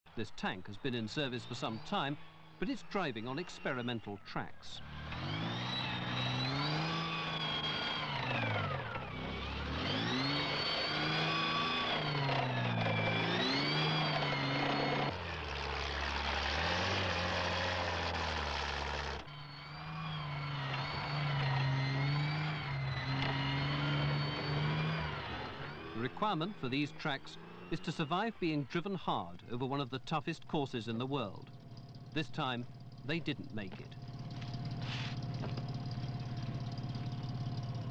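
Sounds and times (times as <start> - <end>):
tank engine revving: 0.1 - 37.9.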